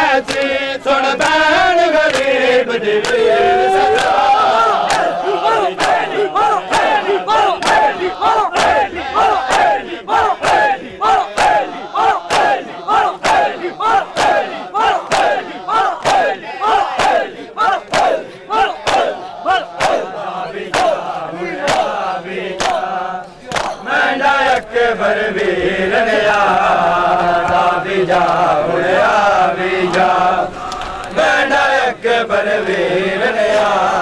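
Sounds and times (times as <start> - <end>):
men slapping their chests: 0.0 - 24.8, 26.2 - 28.6, 29.8 - 31.3, 32.6 - 34.0
group shout: 3.0 - 22.0.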